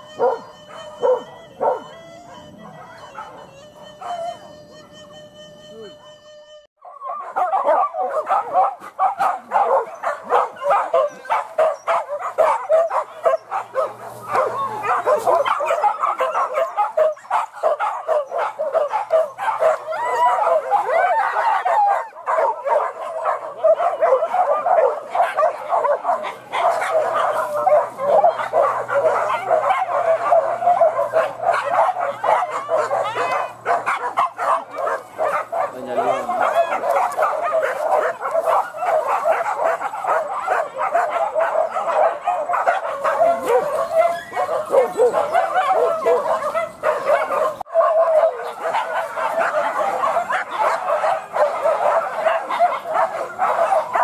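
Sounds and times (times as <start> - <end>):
dogs whining and yipping: 0.0 - 54.0.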